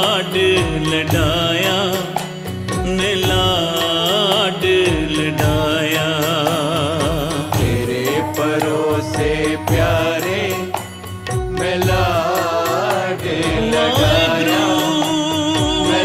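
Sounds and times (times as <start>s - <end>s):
devotional melody with vibrato: 0.0s - 16.0s
low drum beat: 0.5s - 1.8s, 6.8s - 8.3s, 9.0s - 10.4s, 11.3s - 16.0s
steady drone: 7.6s - 16.0s.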